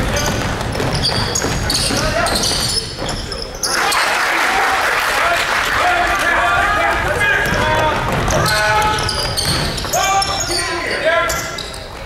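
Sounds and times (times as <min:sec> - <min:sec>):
basketball dribbling on hardwood: 0:00.0 - 0:03.2, 0:07.4 - 0:10.0
sneakers squeaking: 0:00.0 - 0:04.2, 0:07.0 - 0:12.0
voices echoing in gym: 0:00.0 - 0:12.0.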